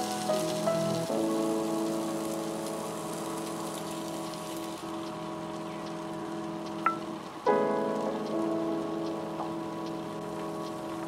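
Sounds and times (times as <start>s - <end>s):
background music of held chords: 0.0s - 11.0s
food sizzling in oil: 0.0s - 11.0s.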